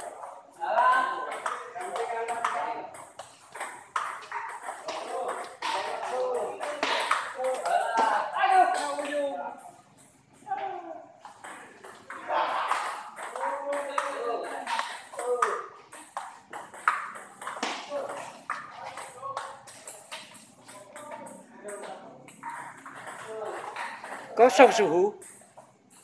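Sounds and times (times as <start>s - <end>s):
people talking: 0.0s - 3.0s, 4.7s - 9.8s, 10.5s - 15.7s, 17.7s - 25.2s.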